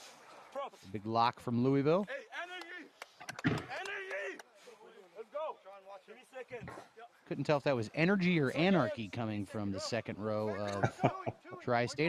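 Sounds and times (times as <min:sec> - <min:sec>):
players shouting calls: 0:02.0 - 0:12.0
commentary voice: 0:06.5 - 0:12.0.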